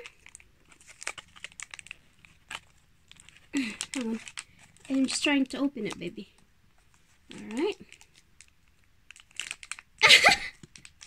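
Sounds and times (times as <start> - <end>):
cat tugging treat in plastic wrapper: 0.0 - 11.0.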